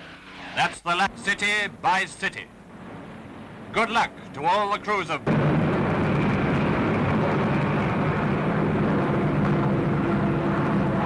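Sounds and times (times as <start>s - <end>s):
piston aircraft engines droning: 0.0s - 11.0s.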